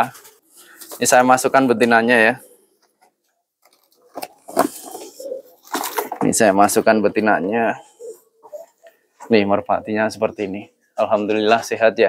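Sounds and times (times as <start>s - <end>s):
rustles and clicks: 3.6s - 7.0s.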